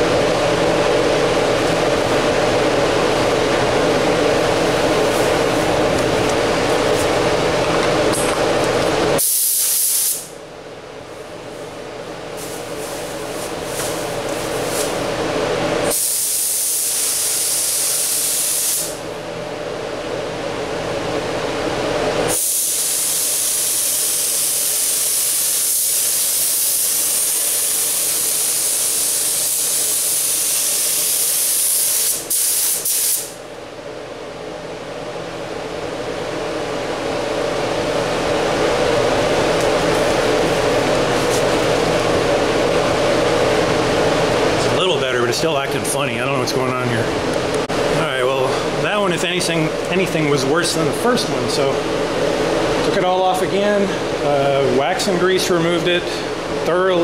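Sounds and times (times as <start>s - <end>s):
steady hum: 0.0s - 57.0s
spray gun hissing: 9.2s - 10.3s, 15.9s - 18.9s, 22.3s - 33.3s.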